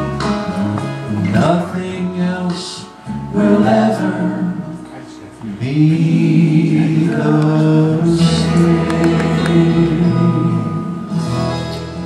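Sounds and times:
musical accompaniment: 0:00.0 - 0:12.0.

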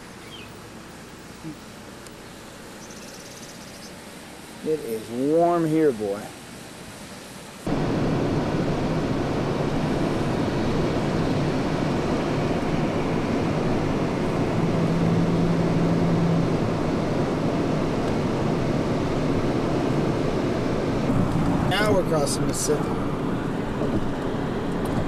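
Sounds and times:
car wind and road noise: 0:03.8 - 0:25.0
low hum: 0:07.7 - 0:24.7.

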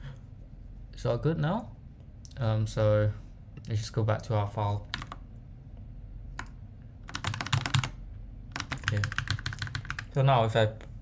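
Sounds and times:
computer keyboard keys clicking: 0:04.9 - 0:05.2, 0:06.4 - 0:10.1.

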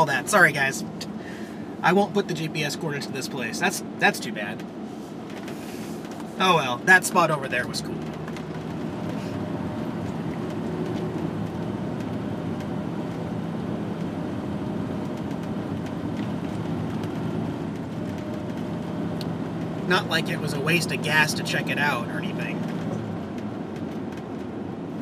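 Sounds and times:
engine drone: 0:00.0 - 0:25.0
road noise: 0:00.0 - 0:25.0.

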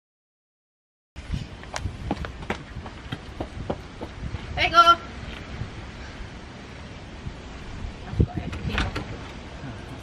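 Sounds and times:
footsteps on a paved path: 0:01.2 - 0:05.6.

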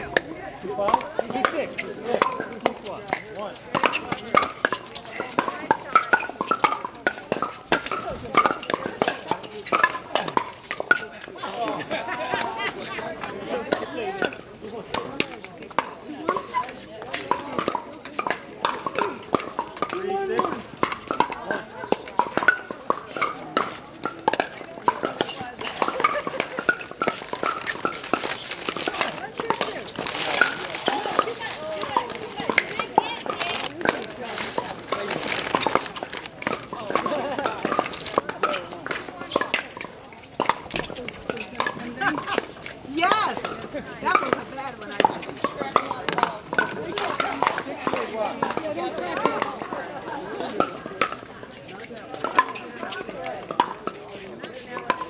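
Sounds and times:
indistinct chatter: 0:00.0 - 0:55.0
paddles hitting plastic ball: 0:00.1 - 0:12.4, 0:13.1 - 0:49.8, 0:52.2 - 0:54.0.

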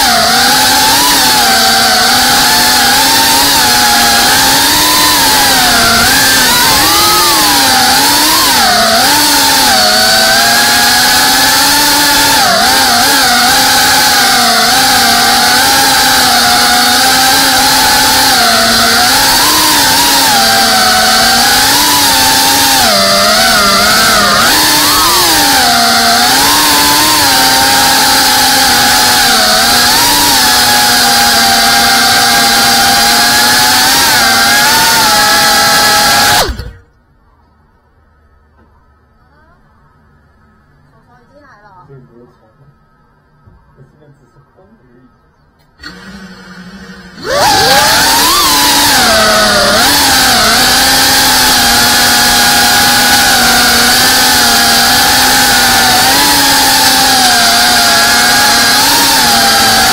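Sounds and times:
drone motors whining: 0:00.0 - 0:37.0, 0:45.5 - 0:59.9.

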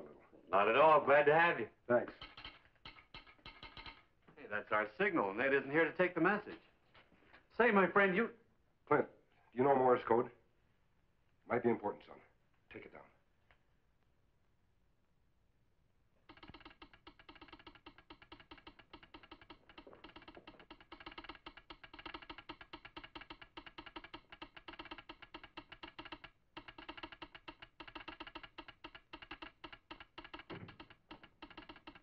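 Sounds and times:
telegraph sounder clicking: 0:16.2 - 0:32.0.

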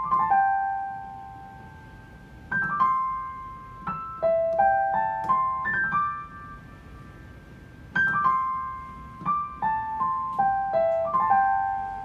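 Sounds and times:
slow piano melody: 0:00.0 - 0:12.0.

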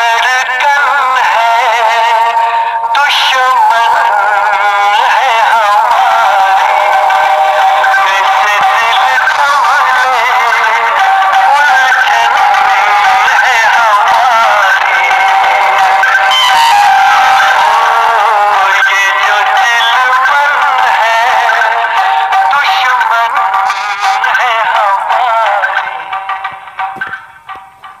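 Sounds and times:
man singing film song: 0:00.0 - 0:26.6.

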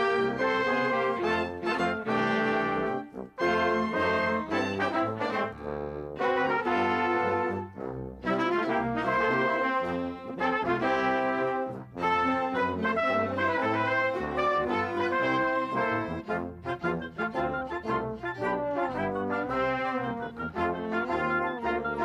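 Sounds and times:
instrumental music with brass: 0:00.0 - 0:22.0.

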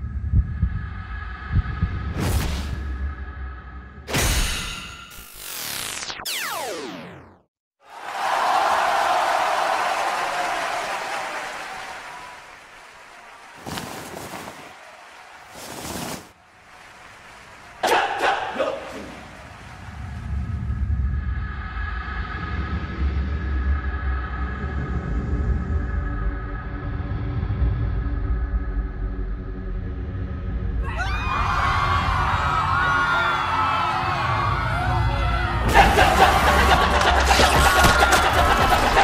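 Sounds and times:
low rumbling ambient music: 0:00.0 - 0:04.2, 0:19.1 - 0:37.8.

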